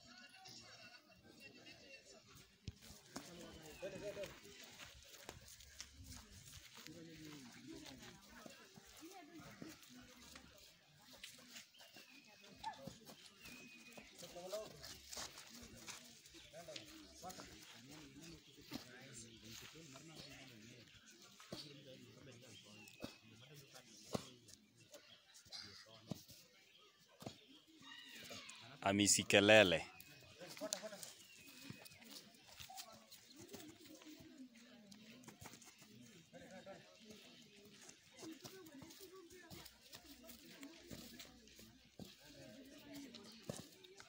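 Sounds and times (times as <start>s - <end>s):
faint distant voices: 0.0s - 44.0s.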